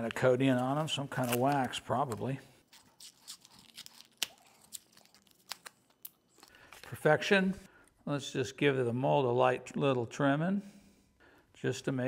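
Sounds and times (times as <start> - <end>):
paper crackling: 0.0 - 7.0.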